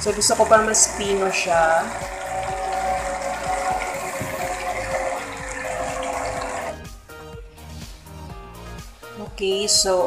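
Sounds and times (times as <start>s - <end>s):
blender motor whirring: 0.0s - 6.8s
smoothie churning in jar: 0.0s - 6.8s.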